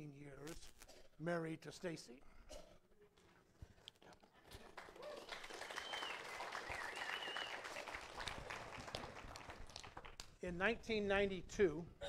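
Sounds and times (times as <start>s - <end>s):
congregation applauding: 4.5s - 10.3s.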